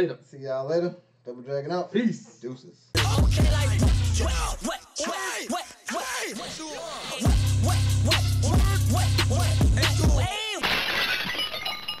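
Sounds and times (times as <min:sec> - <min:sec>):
hip-hop beat: 0:03.0 - 0:10.6
glass shattering sound effect: 0:10.6 - 0:12.0.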